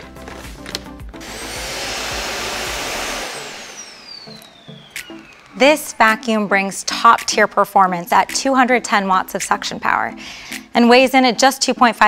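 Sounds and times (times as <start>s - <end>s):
high motor whine: 1.2s - 6.6s.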